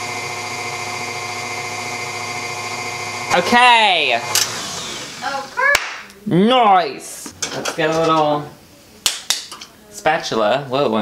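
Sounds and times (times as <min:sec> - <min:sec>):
stand mixer motor humming: 0:00.0 - 0:05.6.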